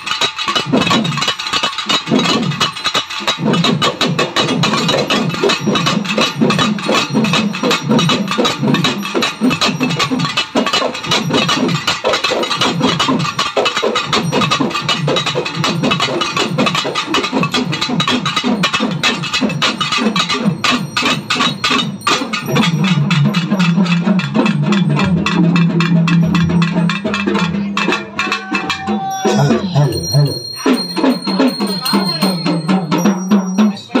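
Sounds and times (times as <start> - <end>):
drums played with sticks: 0.0 - 34.0.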